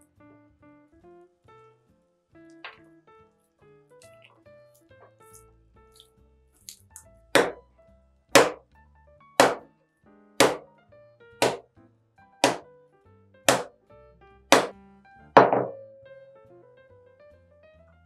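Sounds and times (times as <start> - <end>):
dough slammed on wooden table: 7.4 - 7.6, 8.4 - 8.6, 9.4 - 9.7, 10.4 - 10.7, 11.4 - 11.7, 12.4 - 12.6, 13.5 - 13.7, 14.5 - 14.8, 15.4 - 15.8.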